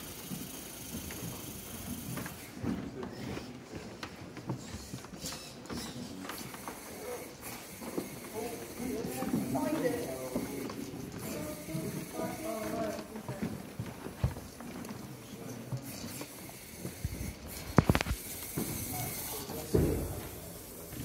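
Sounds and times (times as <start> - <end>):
background chatter: 0.0 - 21.0.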